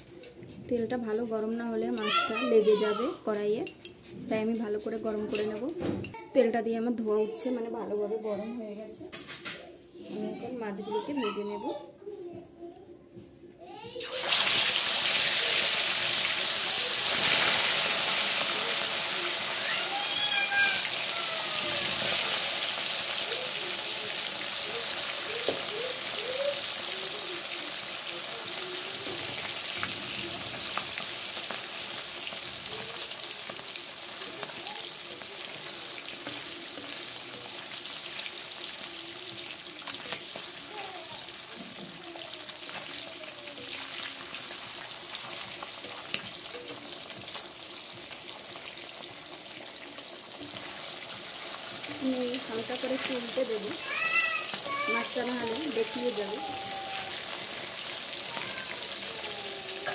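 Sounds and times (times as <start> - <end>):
fish frying in hot oil: 14.0 - 59.9.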